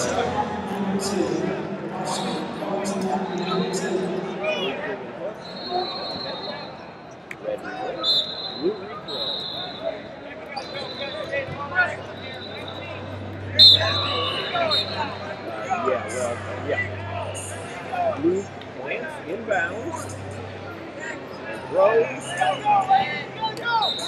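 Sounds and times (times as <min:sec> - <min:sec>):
crowd chatter: 0:00.0 - 0:24.0
referee whistles blowing: 0:05.4 - 0:06.8, 0:08.0 - 0:09.9, 0:10.5 - 0:11.3, 0:12.2 - 0:15.2, 0:23.7 - 0:24.0.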